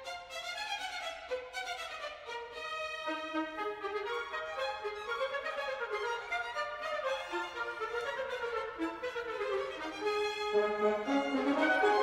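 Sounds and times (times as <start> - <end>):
string orchestra: 0.0 - 12.0
solo trumpet: 7.6 - 12.0.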